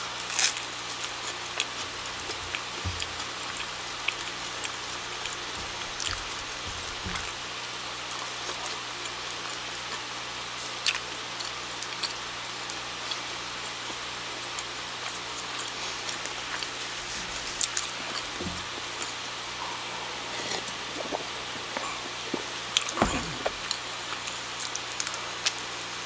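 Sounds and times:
background hiss and low hum: 0.0 - 26.0
person chewing bread: 0.2 - 10.0, 10.6 - 25.6.

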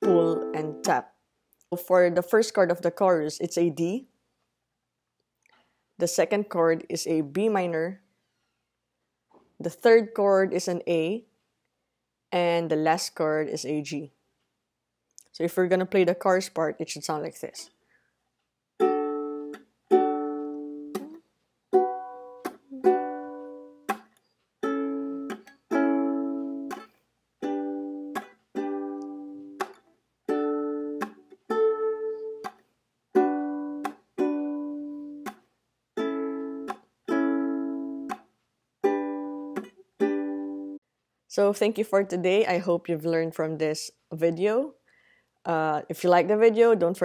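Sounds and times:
ukulele chords strummed and muted: 0.0 - 1.1, 18.8 - 40.8.

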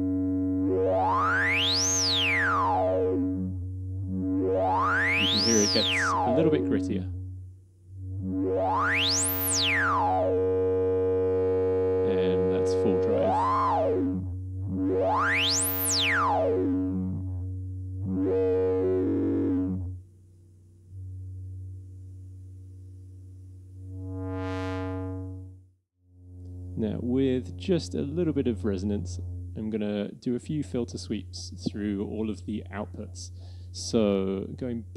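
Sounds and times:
resonant synthesizer filter sweep: 0.0 - 34.4.

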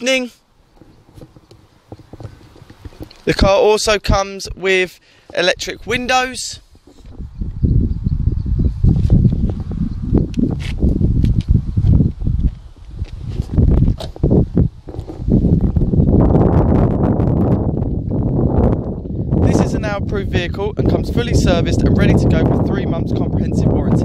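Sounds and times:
wind buffeting microphone: 0.6 - 4.6, 5.3 - 24.0.

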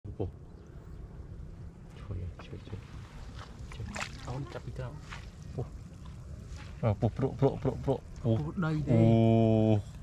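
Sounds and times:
small splashes and drips: 2.6 - 7.0
wet net hauled from water: 2.8 - 8.3.

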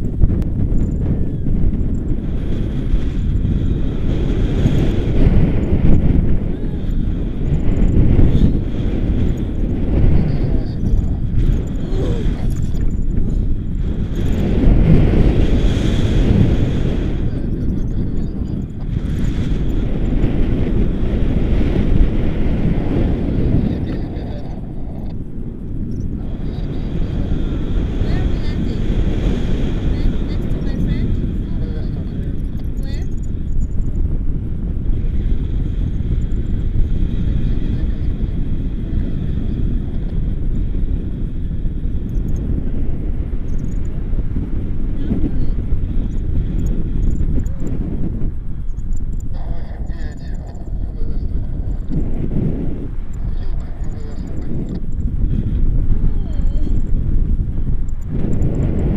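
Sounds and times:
wind rumbling on microphone: 0.0 - 58.9.

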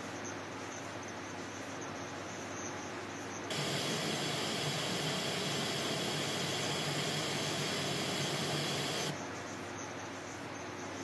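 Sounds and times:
steady hiss of noise: 0.0 - 11.0.

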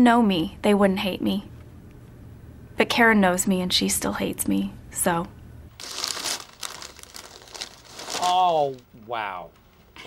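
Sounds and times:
wrapping paper crinkling: 5.8 - 10.0.

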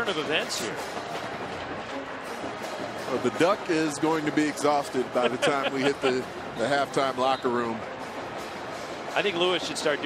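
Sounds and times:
music playing: 0.0 - 10.0
stadium crowd noise: 0.0 - 10.0.

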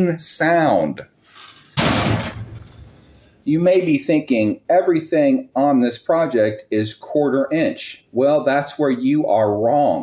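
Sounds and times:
wire screen roll slamming on concrete: 1.7 - 3.0.

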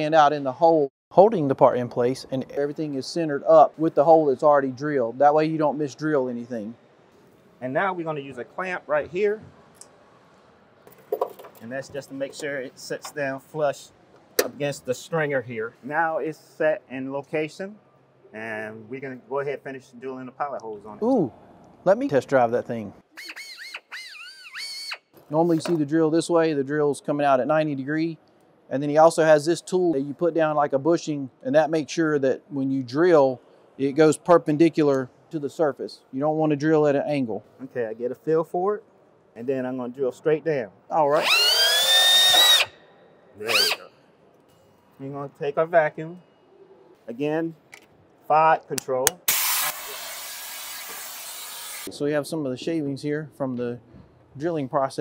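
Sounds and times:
pneumatic drill whining: 23.2 - 25.0, 41.1 - 42.8, 43.5 - 43.9, 49.3 - 51.9
shop vacuum sucking: 49.3 - 51.9.

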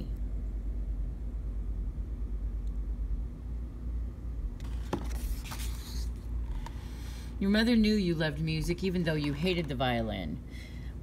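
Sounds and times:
faint even hum: 0.0 - 11.0
low background rumble: 0.0 - 11.0.

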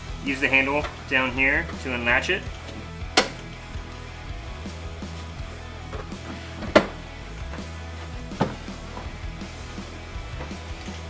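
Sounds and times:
background guitar music: 0.0 - 11.0
car seat clunking: 2.6 - 3.5, 5.2 - 9.3.

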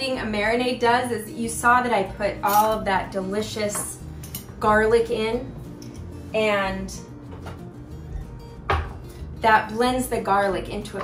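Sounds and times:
faint background music: 0.0 - 11.0
glass bowl knocking on plastic board: 8.7 - 9.0.

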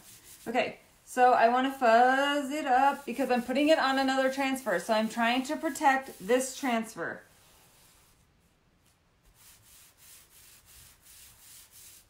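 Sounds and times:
hands rubbing transfer on fabric: 0.0 - 0.6, 7.3 - 12.0.

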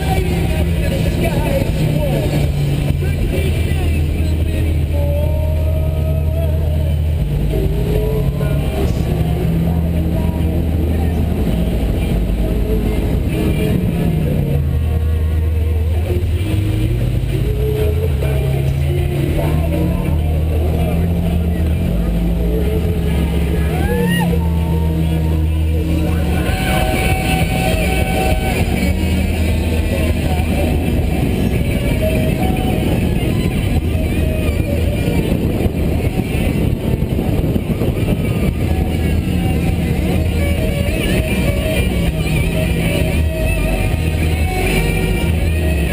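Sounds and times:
motorboat engine running: 0.0 - 45.9
music: 0.0 - 45.9.

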